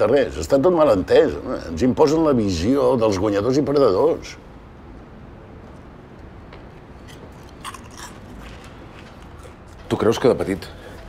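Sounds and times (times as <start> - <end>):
crisps being chewed: 7.0 - 10.2.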